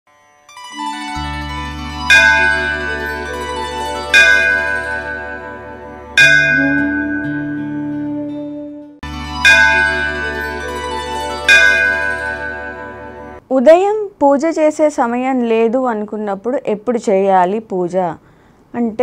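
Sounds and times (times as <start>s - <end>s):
temple bell strikes: 2.0s - 8.0s, 9.0s - 13.4s
low drone: 2.3s - 13.4s.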